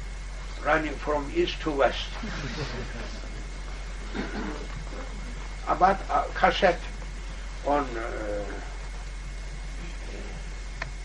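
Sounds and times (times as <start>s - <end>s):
tape hiss and hum: 0.0s - 11.0s
man's drawn-out low syllable: 0.5s - 11.0s.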